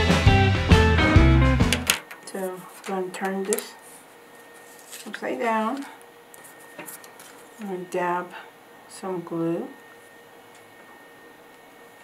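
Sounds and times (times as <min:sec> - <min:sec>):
background music with beat: 0:00.0 - 0:01.9.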